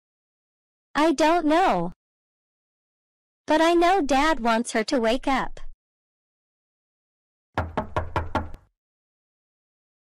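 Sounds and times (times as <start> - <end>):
knocking on a door: 7.6 - 8.7.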